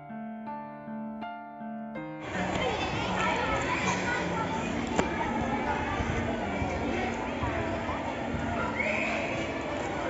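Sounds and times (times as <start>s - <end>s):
girls chattering: 2.2s - 10.0s.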